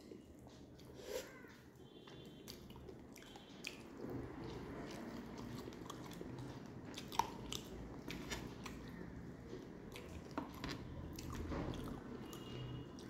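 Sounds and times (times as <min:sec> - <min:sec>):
chewing food: 0:00.0 - 0:13.0.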